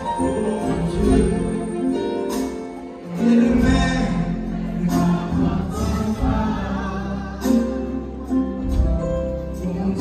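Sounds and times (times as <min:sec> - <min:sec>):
live music in large hall: 0:00.0 - 0:10.0.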